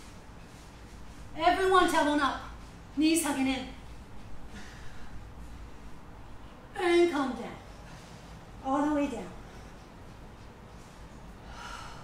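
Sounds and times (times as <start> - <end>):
faint room noise: 0.0 - 12.0
woman breathing out: 11.4 - 12.0.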